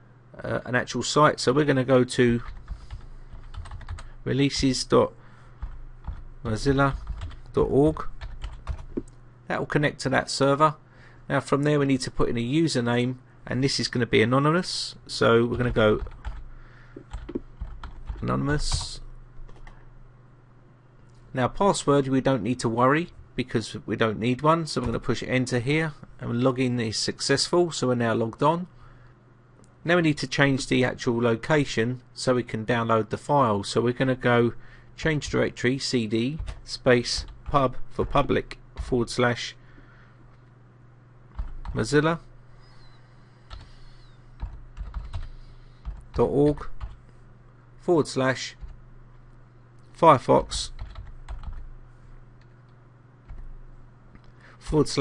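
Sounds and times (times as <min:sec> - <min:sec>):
low steady hum: 0:00.0 - 0:55.0
keyboard typing: 0:02.4 - 0:04.1, 0:05.6 - 0:06.2, 0:06.9 - 0:07.5, 0:08.2 - 0:09.1, 0:15.5 - 0:16.4, 0:17.0 - 0:18.9, 0:36.4 - 0:37.6, 0:41.3 - 0:41.8, 0:43.5 - 0:47.0, 0:50.7 - 0:51.7
keyboard clicks: 0:43.5 - 0:47.0.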